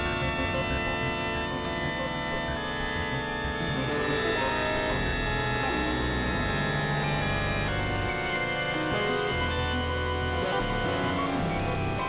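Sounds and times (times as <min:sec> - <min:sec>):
synthesizer drone music: 0:00.0 - 0:12.0.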